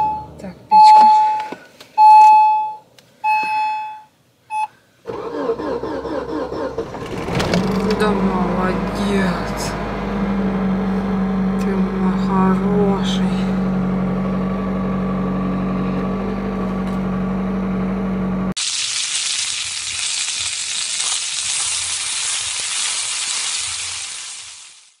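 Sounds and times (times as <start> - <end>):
car engine idling hum: 5.1 - 18.6
food sizzling in hot oil: 18.6 - 25.0.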